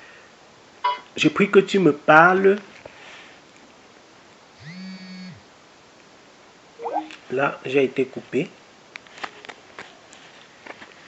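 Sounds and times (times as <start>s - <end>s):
short electronic tone: 6.8s - 7.2s.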